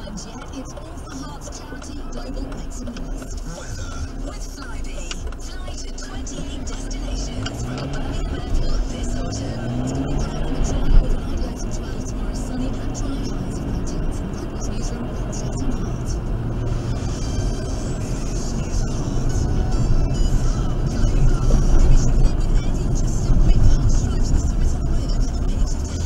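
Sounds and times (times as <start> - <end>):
car engine accelerating: 0.0 - 26.0
car radio music and talk: 0.0 - 26.0
road noise: 0.0 - 26.0.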